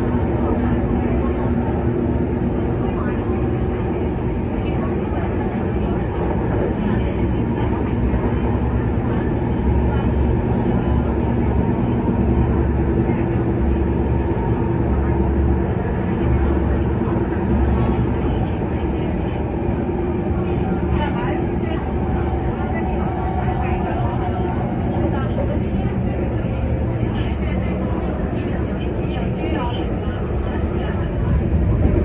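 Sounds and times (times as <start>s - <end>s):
constant hum: 0.0s - 32.0s
train wheels rumbling: 0.0s - 32.0s.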